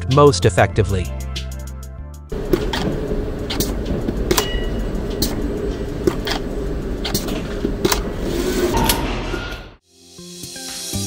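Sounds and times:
robotic arm running: 2.3s - 9.0s.

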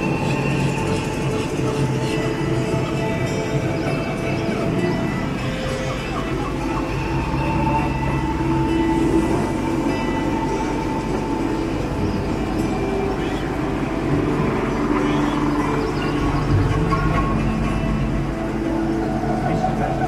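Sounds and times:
background music: 0.0s - 20.0s
indistinct voices: 0.0s - 20.0s
low indoor rumble: 0.0s - 20.0s.

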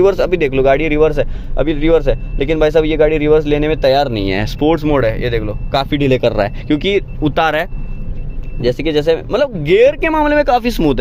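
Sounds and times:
man talking: 0.0s - 7.7s, 8.6s - 11.0s
car engine and road rumble: 0.0s - 11.0s.

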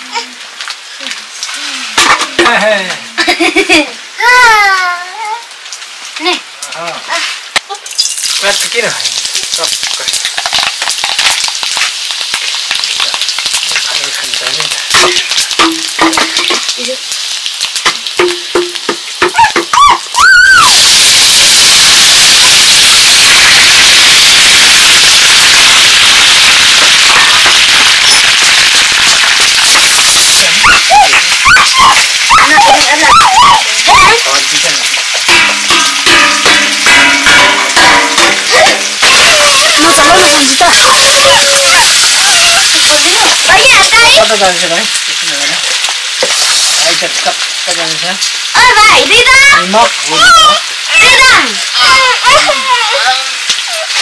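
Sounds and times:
vegetables sizzling in hot oil: 0.0s - 54.0s
voices: 30.2s - 45.6s, 46.8s - 53.9s.

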